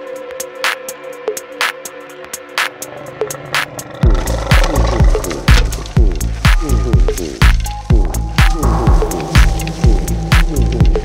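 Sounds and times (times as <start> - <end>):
kick drum: 5.5 - 11.0.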